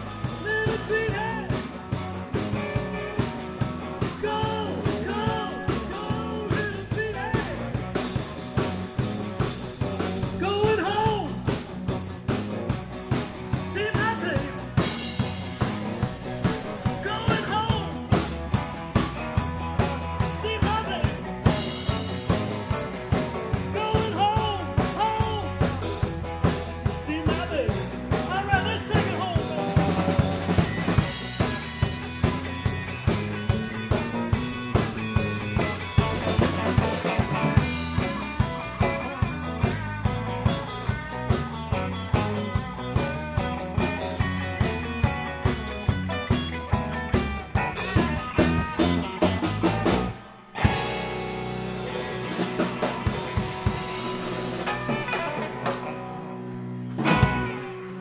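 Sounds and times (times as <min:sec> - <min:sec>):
blues-rock band playing: 0:00.0 - 0:58.0
drum kit beat: 0:00.0 - 0:58.0
electric guitar lead: 0:00.0 - 0:58.0.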